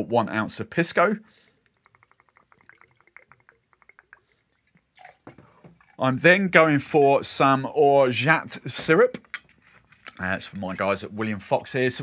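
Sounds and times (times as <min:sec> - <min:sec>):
liquid pouring into metal jigger: 0:01.7 - 0:06.1.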